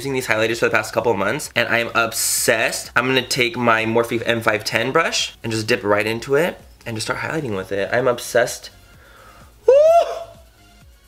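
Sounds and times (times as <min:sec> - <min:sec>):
background music with steady beat: 0:00.0 - 0:11.0
man shouting woo: 0:09.6 - 0:10.4.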